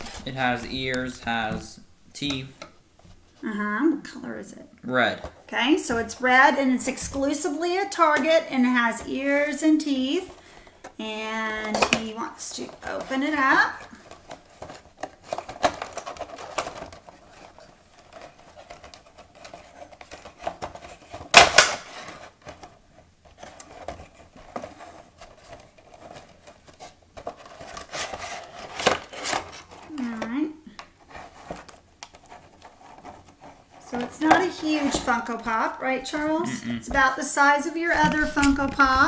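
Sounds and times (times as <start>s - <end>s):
cardboard and plastic rustling: 0.0s - 3.4s, 5.1s - 39.0s
sharp plastic crackle: 13.8s - 34.6s.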